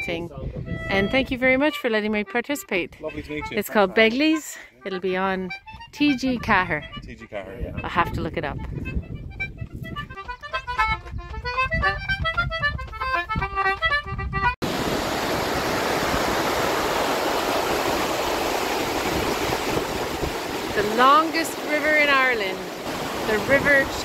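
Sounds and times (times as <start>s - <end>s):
lively instrumental music: 0.7s - 14.6s, 20.7s - 22.7s
water rushing over a weir: 14.6s - 24.0s.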